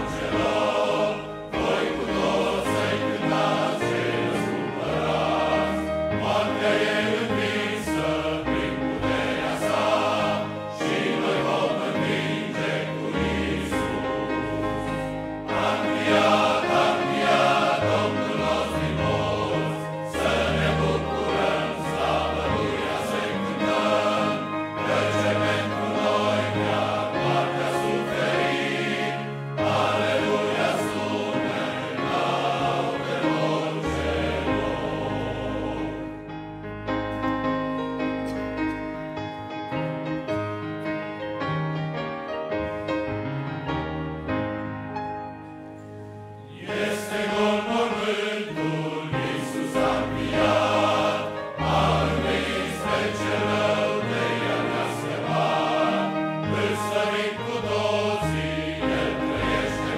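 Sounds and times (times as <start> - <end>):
men's choir singing: 0.0 - 36.4, 46.4 - 59.9.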